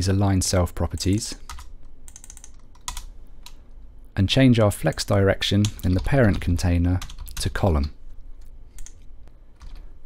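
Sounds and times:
computer keyboard keystrokes: 1.5s - 3.6s, 7.0s - 7.5s, 8.8s - 9.8s.

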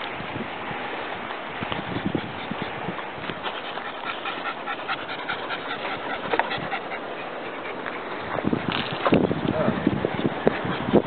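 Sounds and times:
dog panting: 1.7s - 11.0s.

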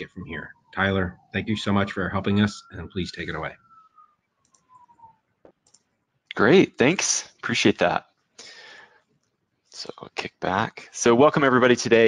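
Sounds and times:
faint falling tone: 0.0s - 5.2s.

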